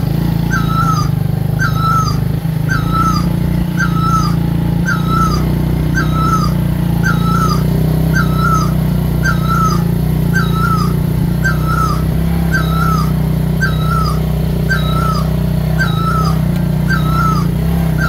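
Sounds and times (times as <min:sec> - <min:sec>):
small engine running: 0:00.0 - 0:18.0
high squeaky chirp: 0:00.4 - 0:18.0.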